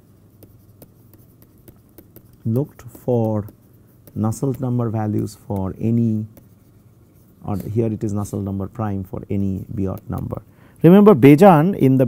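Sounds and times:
low steady hum: 0:00.0 - 0:12.0
stylus tapping and scratching: 0:00.0 - 0:12.0.

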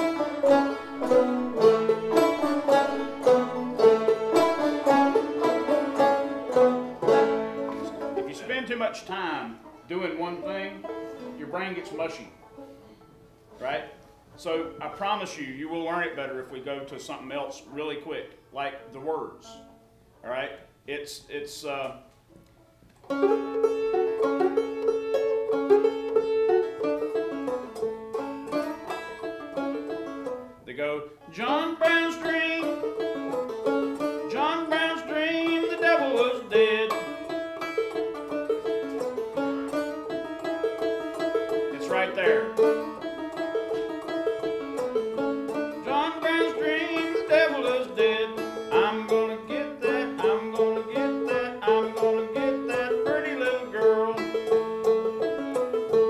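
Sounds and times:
high banjo drone note: 0:00.0 - 0:08.6, 0:31.6 - 0:56.0
banjo fingerpicking: 0:00.0 - 0:19.8, 0:21.8 - 0:30.6, 0:31.2 - 0:56.0.

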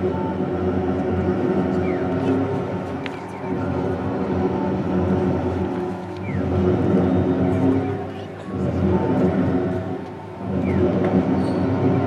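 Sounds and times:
low drone over loudspeakers: 0:00.0 - 0:12.0.

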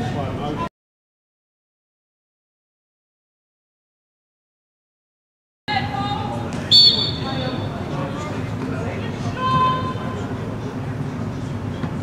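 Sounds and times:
players calling: 0:05.7 - 0:10.6
referee's whistle blast: 0:06.7 - 0:07.7.

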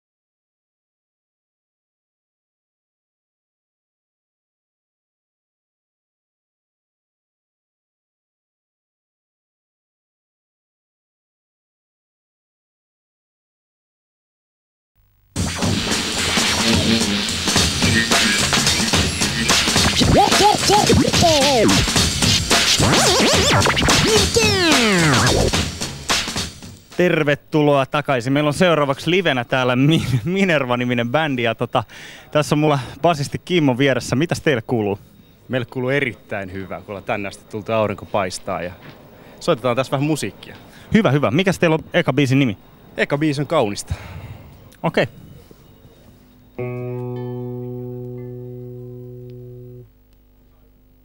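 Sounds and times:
record scratching: 0:15.4 - 0:25.7
music beat: 0:15.4 - 0:26.7
low amplified string note: 0:16.6 - 0:17.5, 0:46.6 - 0:49.9
faint low hum: 0:27.3 - 0:51.0.

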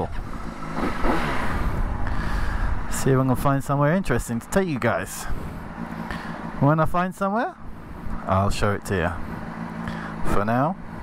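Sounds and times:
motorcycle engine idling and revving: 0:00.0 - 0:11.0.

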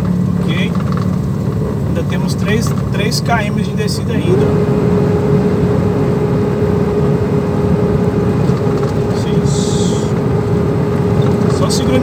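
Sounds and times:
steady whine: 0:00.0 - 0:12.0
truck diesel engine drone: 0:00.0 - 0:12.0.

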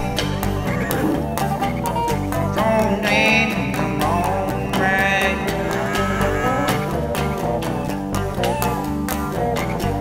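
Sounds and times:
drums steady beat: 0:00.0 - 0:08.4
rock band jamming: 0:00.0 - 0:10.0.

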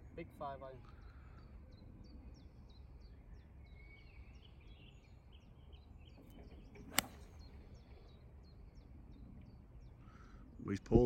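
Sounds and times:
golf club striking ball: 0:06.9 - 0:07.4.

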